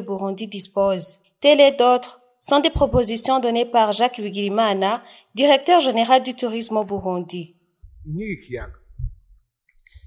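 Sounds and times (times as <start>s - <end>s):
man speaking: 8.0s - 8.8s
faint mouth clicks: 9.8s - 10.0s.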